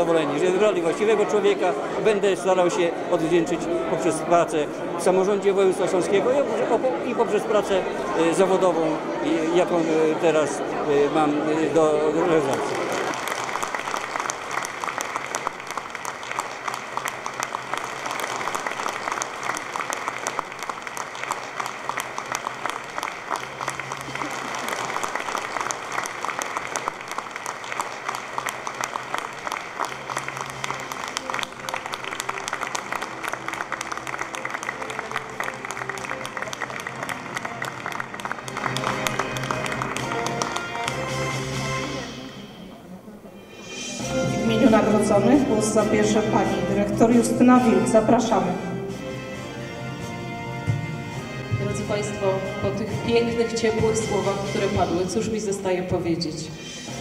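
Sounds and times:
audience applauding: 0.0s - 9.7s, 11.6s - 42.1s
music playing: 0.0s - 57.0s.

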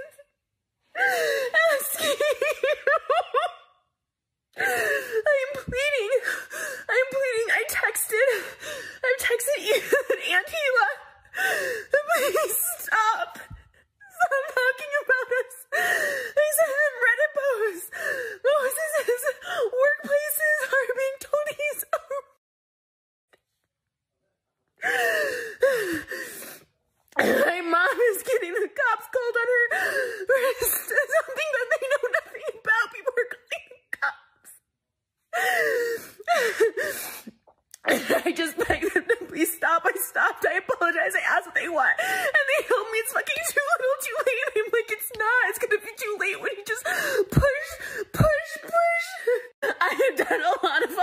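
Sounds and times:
woman sobbing and gasping: 0.0s - 3.9s, 4.5s - 22.4s, 24.8s - 34.6s, 35.2s - 51.0s.

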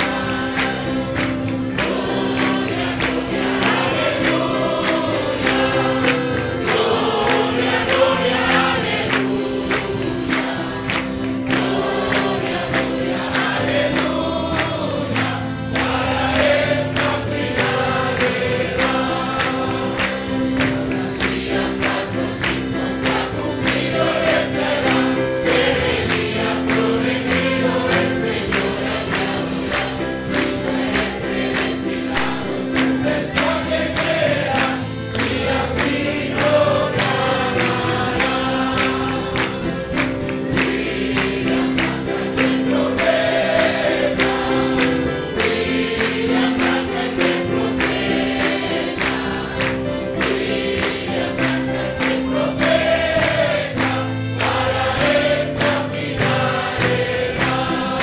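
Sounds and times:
congregation singing a hymn: 0.0s - 58.0s
hand-clapping on a beat: 0.0s - 58.0s.

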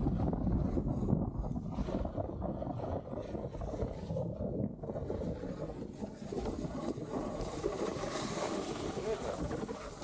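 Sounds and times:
snowboard scraping over snow: 0.0s - 10.0s
wind buffeting microphone: 0.0s - 10.0s.

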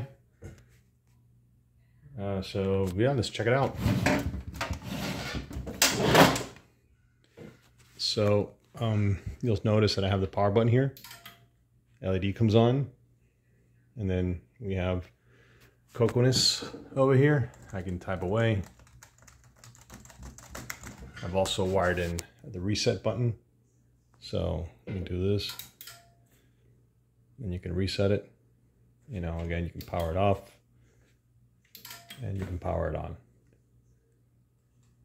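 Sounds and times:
scrape on metal case: 3.8s - 6.4s
typing on computer keyboard: 17.5s - 21.1s.

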